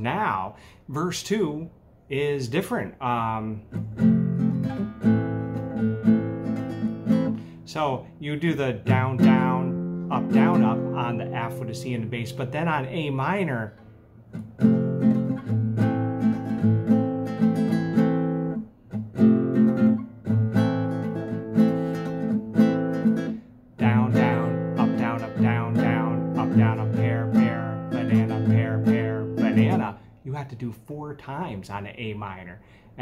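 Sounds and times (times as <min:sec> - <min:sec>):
classical guitar strummed: 0:03.6 - 0:07.6, 0:08.3 - 0:30.1.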